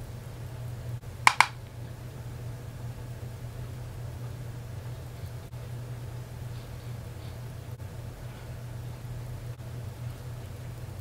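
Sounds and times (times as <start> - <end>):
sharp clicks: 1.3 - 1.6.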